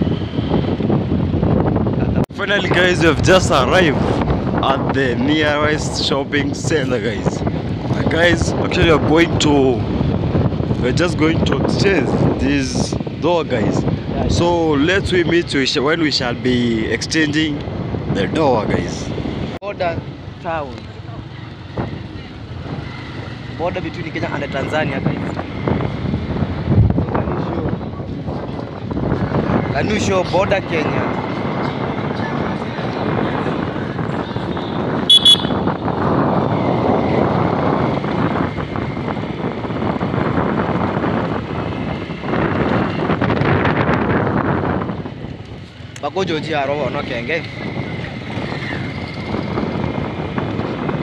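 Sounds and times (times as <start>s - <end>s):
wind on microphone: 0.0s - 51.0s
motorcycle engine: 34.3s - 51.0s
motorcycle horn beeps: 34.6s - 35.8s.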